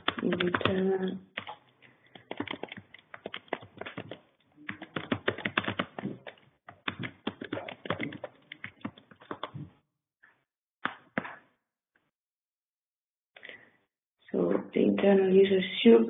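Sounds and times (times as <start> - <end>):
typing on computer keyboard: 0.0 - 9.6.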